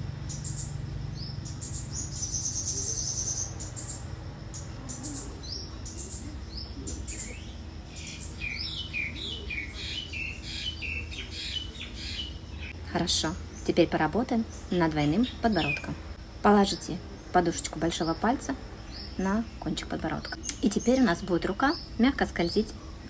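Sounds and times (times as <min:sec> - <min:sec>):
low steady hum: 0:00.0 - 0:23.0
small birds chirping: 0:00.0 - 0:23.0.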